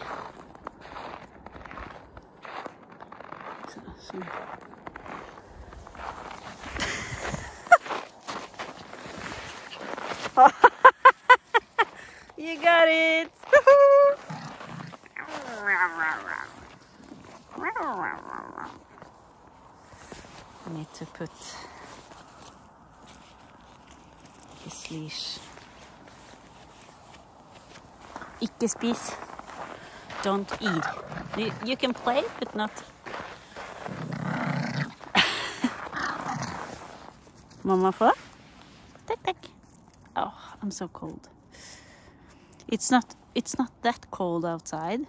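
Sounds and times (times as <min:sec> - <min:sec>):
dog growling: 0:14.1 - 0:19.0, 0:30.5 - 0:31.8, 0:33.7 - 0:37.0.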